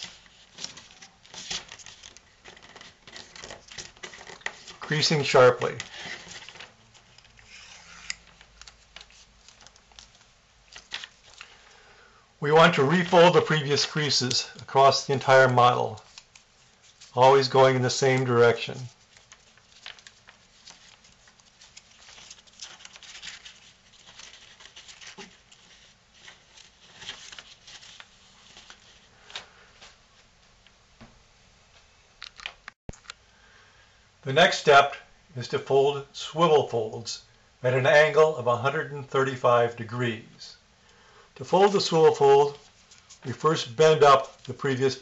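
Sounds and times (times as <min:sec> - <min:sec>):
card strip rustling and crinkling: 0:00.0 - 0:11.6, 0:12.5 - 0:30.0, 0:41.5 - 0:44.9.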